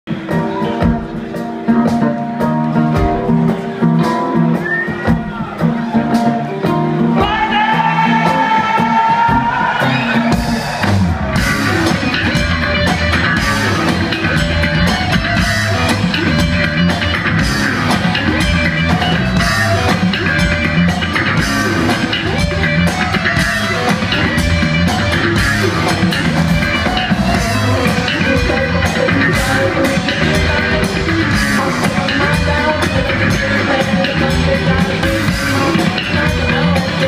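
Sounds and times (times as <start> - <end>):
rock band playing live: 0.1 - 37.0.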